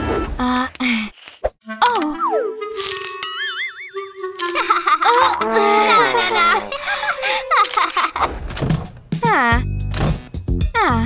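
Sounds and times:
music: 1.6 - 11.0.

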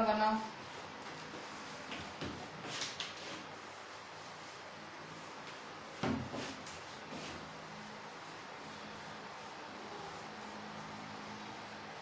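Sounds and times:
eraser rubbing on whiteboard: 0.5 - 12.0
eraser knocking on whiteboard: 1.9 - 3.2, 6.0 - 7.4.

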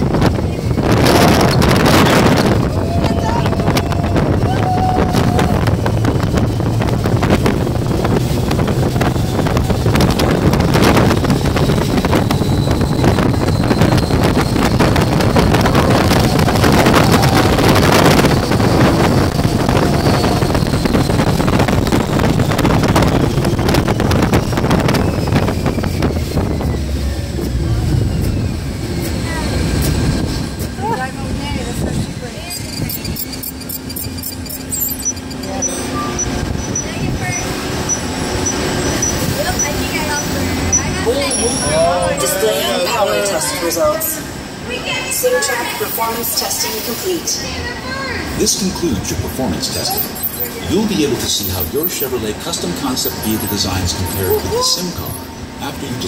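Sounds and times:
wind buffeting microphone: 0.0 - 42.3
ride vehicle running: 0.0 - 56.0.

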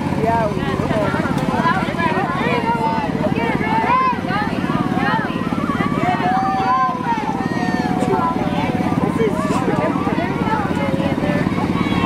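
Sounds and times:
crowd chatter: 0.0 - 12.0
small engines puttering: 0.0 - 12.0.

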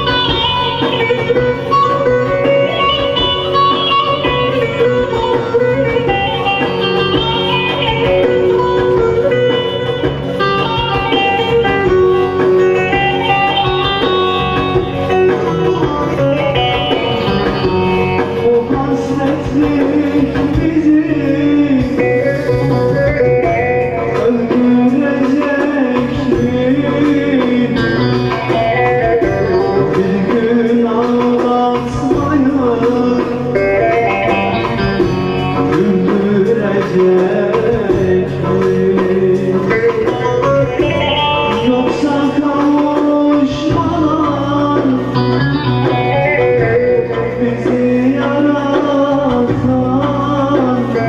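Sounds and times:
electronic keyboard: 0.0 - 51.0.

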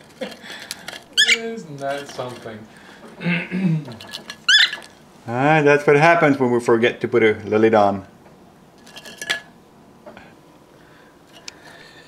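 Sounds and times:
bird scraping in ceramic jar: 0.8 - 2.6, 3.9 - 5.0, 8.8 - 9.5.

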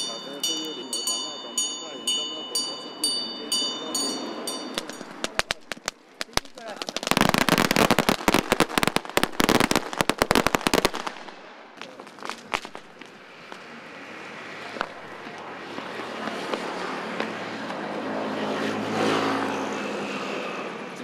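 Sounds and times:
ringing metallic strike: 0.0 - 5.3
firecrackers going off: 4.7 - 13.7.

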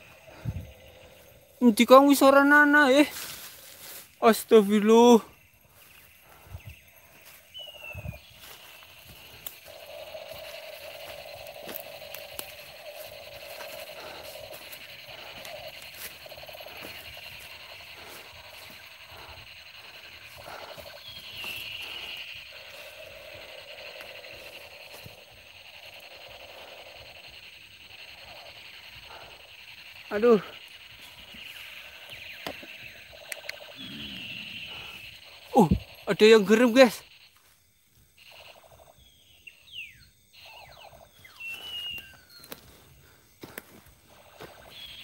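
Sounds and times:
insects chirring: 0.0 - 45.0.

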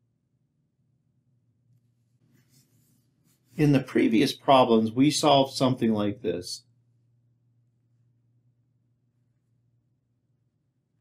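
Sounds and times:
faint low hum: 0.0 - 11.0
stylus scratching on a screen: 2.0 - 4.0.

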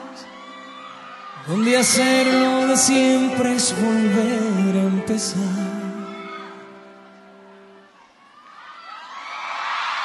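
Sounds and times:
concert crowd cheering and screaming: 0.0 - 10.0
live pop song final note: 1.4 - 7.4.

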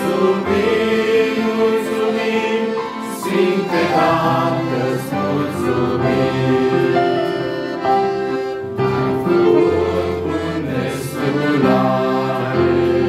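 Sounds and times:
electronic keyboard: 0.0 - 13.0
group singing a hymn: 0.0 - 13.0
piano accordion: 0.0 - 13.0.

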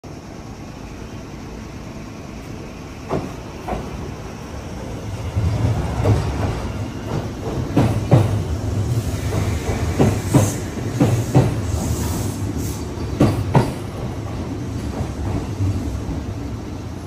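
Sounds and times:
train running rumble: 0.1 - 17.0
train wheels clacking over rail joints: 3.0 - 4.0, 5.7 - 16.2.

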